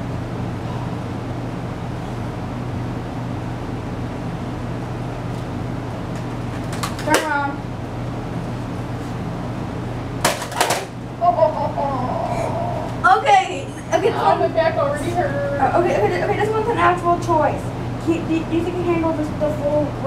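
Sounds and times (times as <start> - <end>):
low room hum: 0.0 - 20.0.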